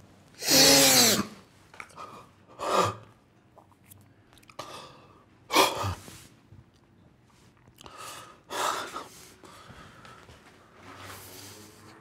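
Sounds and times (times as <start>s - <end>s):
soft breath: 7.8s - 12.0s.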